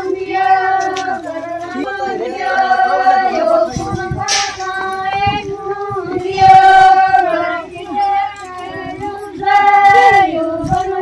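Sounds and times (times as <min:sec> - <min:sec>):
women singing together: 0:00.0 - 0:11.0.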